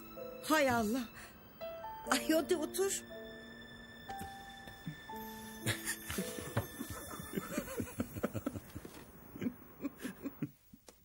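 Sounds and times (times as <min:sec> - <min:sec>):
people laughing together: 0:05.7 - 0:10.5.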